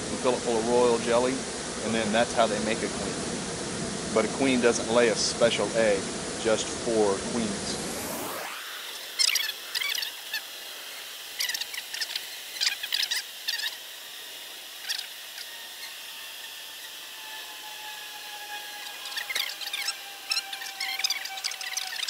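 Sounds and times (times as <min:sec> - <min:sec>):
bird chirping: 0:08.8 - 0:13.8, 0:14.8 - 0:16.9, 0:18.6 - 0:22.0.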